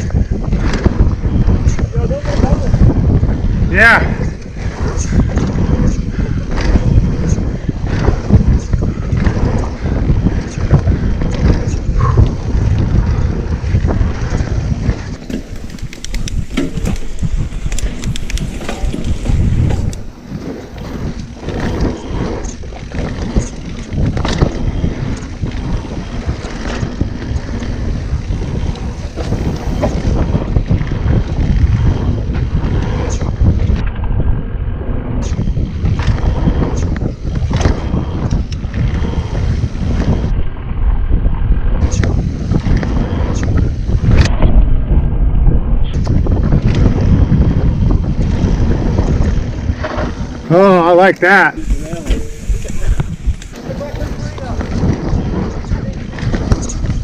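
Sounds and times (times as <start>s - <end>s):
bike clicks and rattles: 0.0s - 45.1s, 45.8s - 57.0s
bike tyre noise on dirt: 0.0s - 57.0s
wind buffeting microphone: 0.0s - 57.0s.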